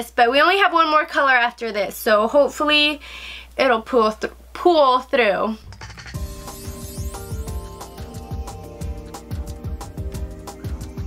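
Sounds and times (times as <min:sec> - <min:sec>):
background music: 0:05.6 - 0:11.0.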